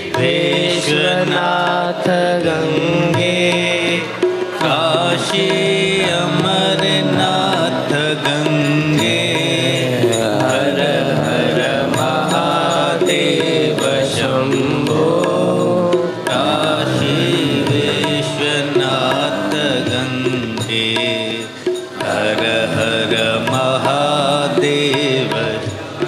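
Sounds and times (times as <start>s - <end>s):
instrumental accompaniment: 0.0s - 26.0s
person singing devotional song: 0.0s - 26.0s.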